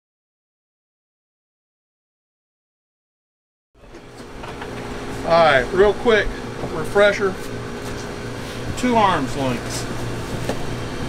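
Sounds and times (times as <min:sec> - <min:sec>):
mechanical hum: 0:03.8 - 0:11.0.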